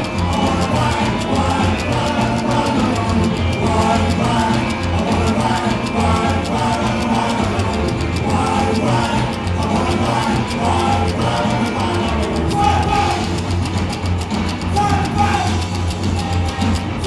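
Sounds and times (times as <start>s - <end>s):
man singing lead vocal: 0.0s - 13.4s, 14.7s - 15.8s
drums: 0.0s - 17.0s
electric guitars: 0.0s - 17.0s
upright double bass: 0.0s - 17.0s.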